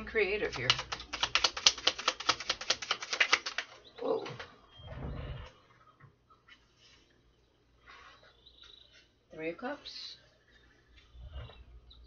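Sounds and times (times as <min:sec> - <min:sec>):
cards being shuffled: 0:00.4 - 0:03.8
soft card handling sounds: 0:00.5 - 0:03.7.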